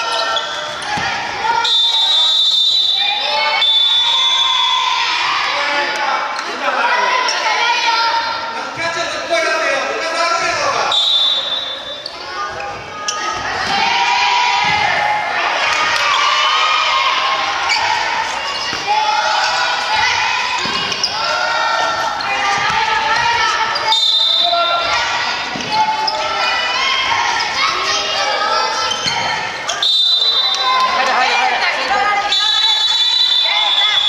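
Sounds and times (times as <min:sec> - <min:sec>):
children shouting in a gymnasium: 0:00.0 - 0:08.6, 0:11.2 - 0:34.0.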